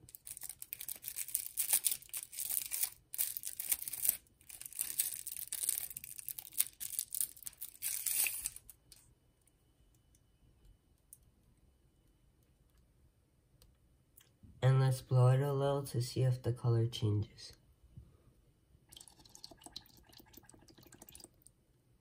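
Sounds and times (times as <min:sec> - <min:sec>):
plastic wrapper crinkling and tearing: 0:00.0 - 0:09.0.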